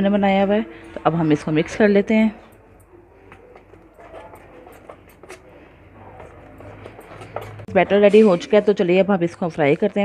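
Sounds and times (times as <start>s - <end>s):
spoon stirring thick batter: 3.2s - 7.7s.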